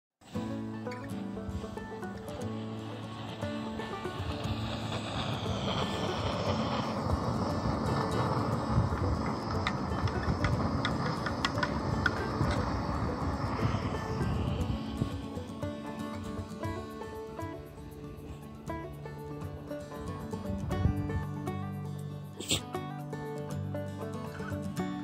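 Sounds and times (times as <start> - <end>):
camp stove burning: 0.2 - 25.0.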